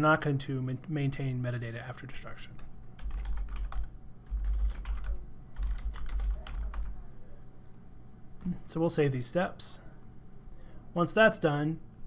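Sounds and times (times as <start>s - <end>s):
typing on a keyboard: 3.0s - 6.9s.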